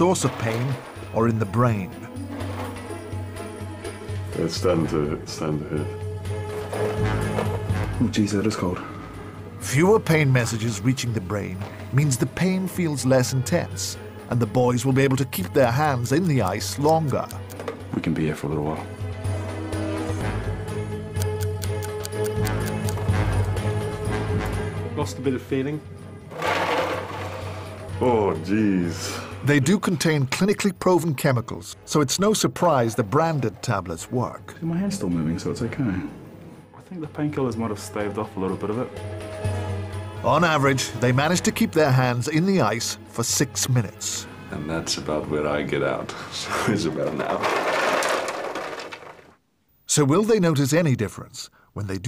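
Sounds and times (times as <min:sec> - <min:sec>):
ice cubes and water splashing: 0:00.0 - 0:01.4
background music: 0:00.0 - 0:49.2
ice cubes rattling in water: 0:26.3 - 0:27.7, 0:47.2 - 0:49.4.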